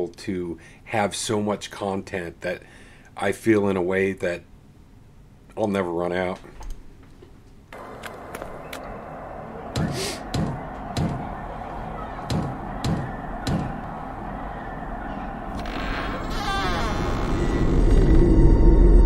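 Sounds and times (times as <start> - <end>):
eerie background drone: 7.7 - 19.0
knocking on wooden door: 9.8 - 11.2, 12.3 - 13.8
door creaking open: 15.5 - 18.6.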